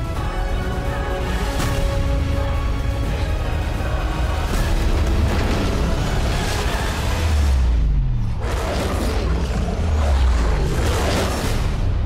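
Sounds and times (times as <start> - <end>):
dense trailer score: 0.0 - 12.0.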